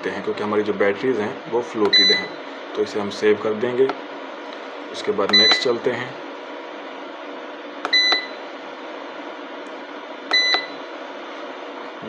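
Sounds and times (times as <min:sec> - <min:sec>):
push-button click: 0:07.9 - 0:08.3, 0:10.3 - 0:10.7.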